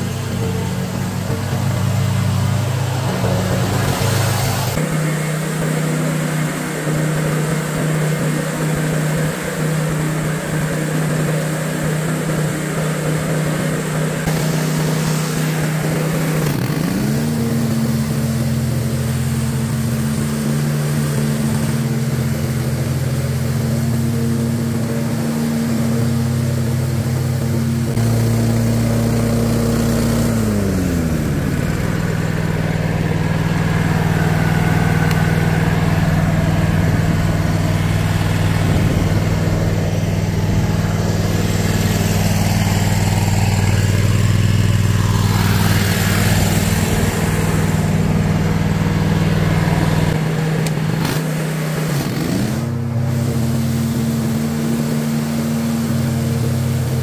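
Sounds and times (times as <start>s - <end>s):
mower engine running: 0.0s - 57.0s.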